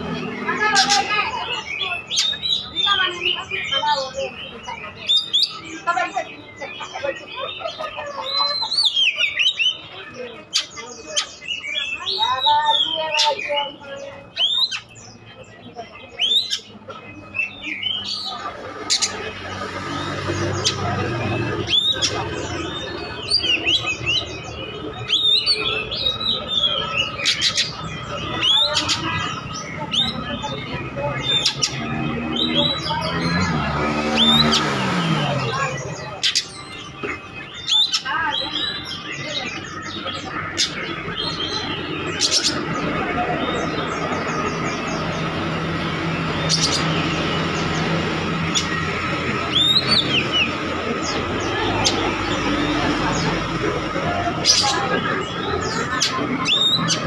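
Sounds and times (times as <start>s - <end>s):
bird singing chirps and whistles: 0.0s - 57.0s.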